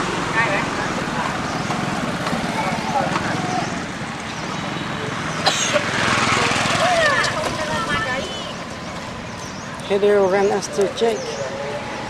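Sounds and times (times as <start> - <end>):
outdoor noise: 0.0 - 12.0.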